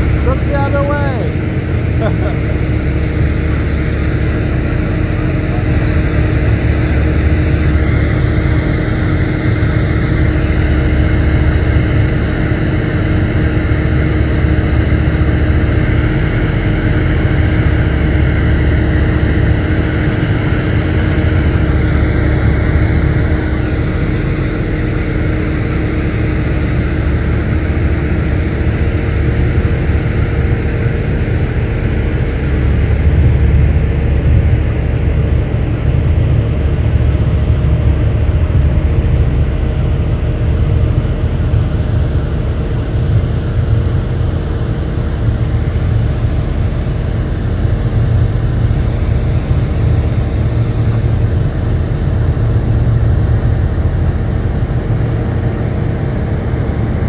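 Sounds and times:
low engine rumble: 0.0 - 57.0.

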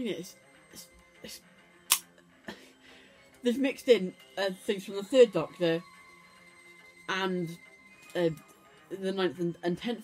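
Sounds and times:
faint music: 0.0 - 10.0
sharp click: 1.9 - 2.1.

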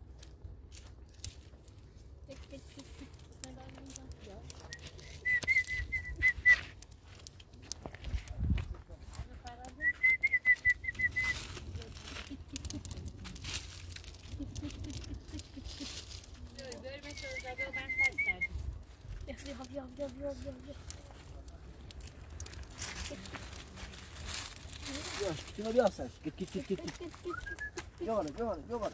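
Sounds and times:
murmuring voices: 11.6 - 18.5, 20.4 - 28.9.

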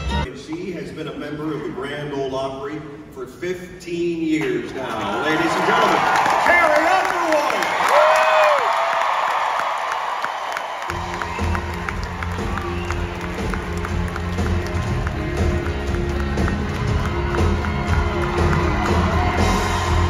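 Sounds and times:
live band playing: 0.0 - 0.3, 10.9 - 20.0
audience applause: 4.8 - 20.0.

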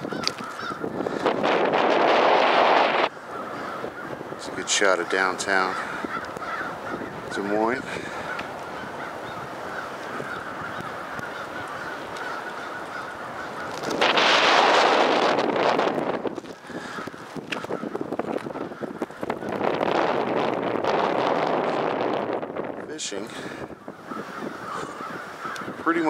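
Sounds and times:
geese honking: 0.0 - 19.9, 23.5 - 26.0.

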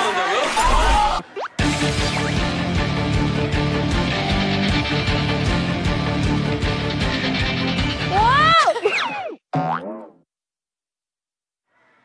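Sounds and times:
cartoon boing sound effect: 9.5 - 10.2.

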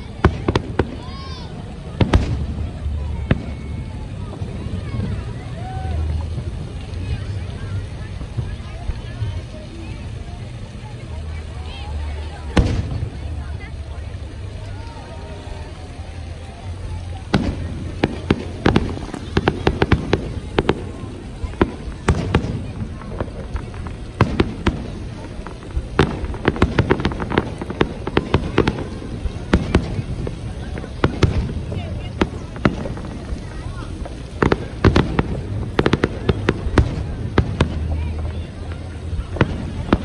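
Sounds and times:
fireworks bursting with sharp bangs: 0.0 - 10.0, 10.7 - 40.0.

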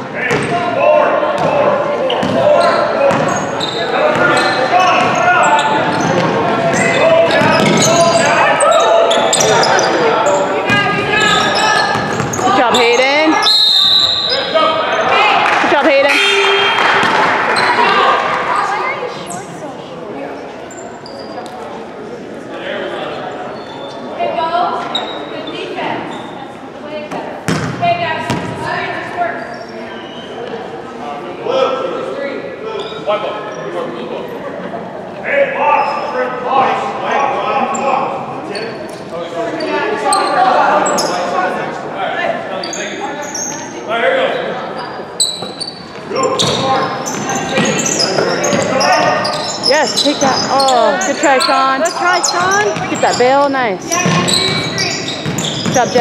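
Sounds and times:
spectators' voices and shouts: 0.0 - 45.2, 45.8 - 56.0
basketball bouncing on floor: 3.1 - 3.3, 27.5 - 28.5.

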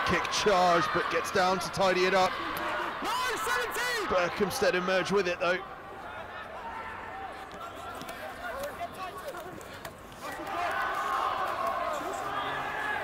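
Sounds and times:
players shouting and calling: 0.0 - 13.0.

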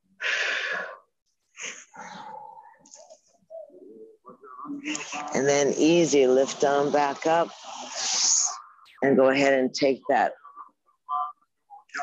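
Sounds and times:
quiet breathing: 0.0 - 3.1.

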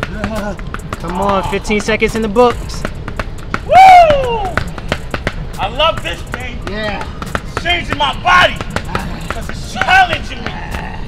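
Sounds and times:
sharp slaps and knocks: 0.0 - 11.0
man groaning and grunting: 10.4 - 11.0.

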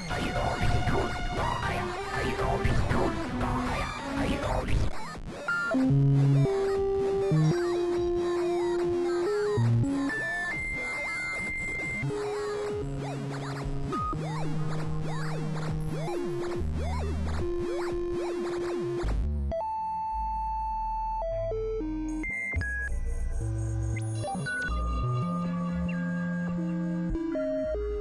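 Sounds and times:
experimental synthesizer music: 0.0 - 28.0.

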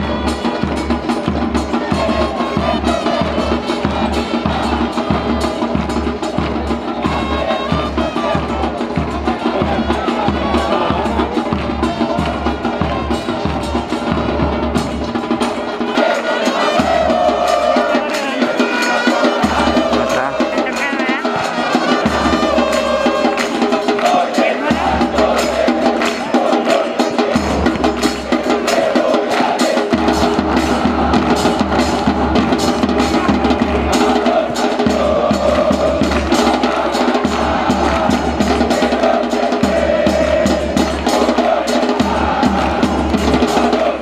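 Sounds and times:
bass drum beats: 0.0 - 16.0, 16.6 - 44.0
crowd singing a chant: 0.0 - 44.0.

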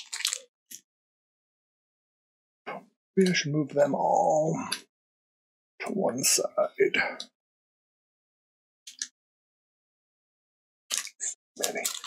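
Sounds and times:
foil wrappers crinkling: 0.0 - 0.5, 10.9 - 12.0.

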